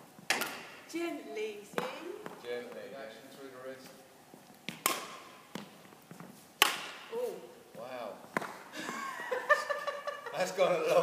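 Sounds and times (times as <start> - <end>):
sharp knocks echoing in a hall: 6.6 - 7.1.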